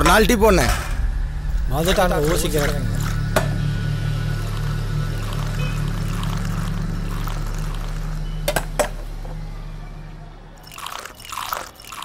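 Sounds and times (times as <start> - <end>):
background music drone: 0.0 - 12.0
tea pouring into glasses: 1.9 - 3.3, 4.3 - 9.0, 10.6 - 12.0.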